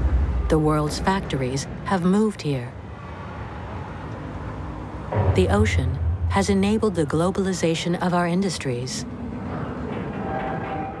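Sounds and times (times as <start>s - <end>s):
low rumble: 5.1s - 8.1s.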